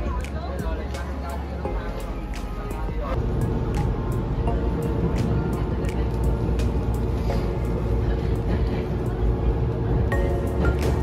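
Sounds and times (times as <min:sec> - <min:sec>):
background music: 0:00.0 - 0:11.0
train rumbling: 0:03.0 - 0:11.0.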